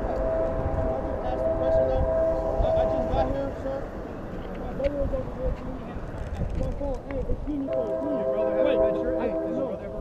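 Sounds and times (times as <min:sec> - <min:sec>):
horn sounding two held notes: 0:00.0 - 0:03.4, 0:07.7 - 0:10.0
wind rumbling on microphone: 0:00.0 - 0:10.0.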